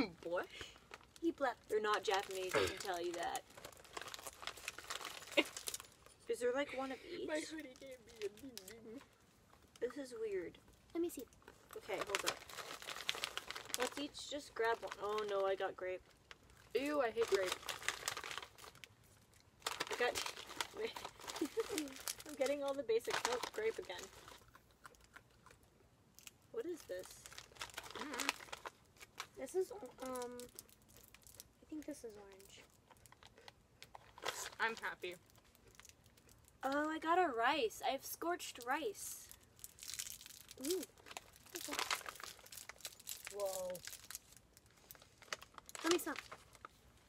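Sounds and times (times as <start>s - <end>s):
plastic bag crinkling: 0.1s - 25.6s, 26.2s - 36.9s, 38.4s - 47.0s.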